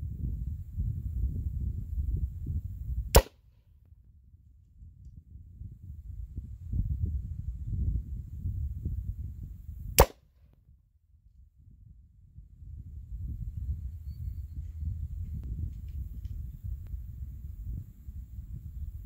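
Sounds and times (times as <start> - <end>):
airgun shots: 3.2 - 3.5, 10.0 - 10.3.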